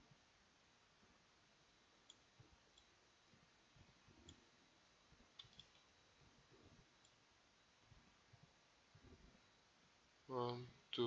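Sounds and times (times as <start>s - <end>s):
mouse and keyboard clicks: 5.4s - 5.9s.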